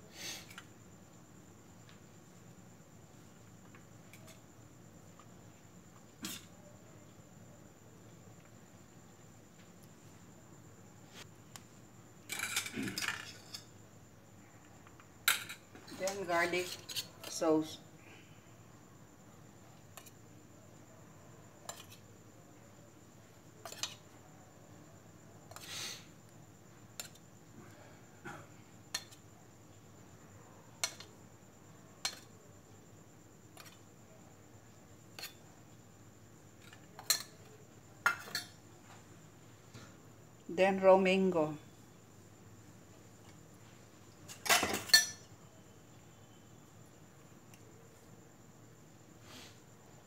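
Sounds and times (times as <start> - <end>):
metal spoon clinking on steel bowls: 36.7 - 37.4, 38.0 - 38.6, 44.3 - 45.3
spoon clinking on steel bowl: 44.5 - 45.3.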